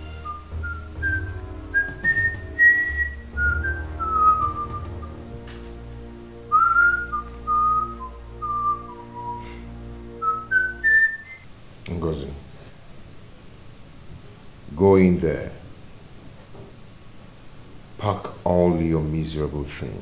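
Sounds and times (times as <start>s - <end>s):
sustained low chords: 0.0s - 10.9s
slow whistled melody: 0.0s - 11.5s.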